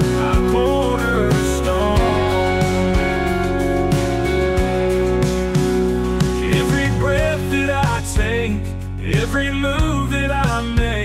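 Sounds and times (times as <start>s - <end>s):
person singing worship song: 0.0s - 3.3s, 6.4s - 10.9s
instrumental backing with beat: 0.0s - 11.0s.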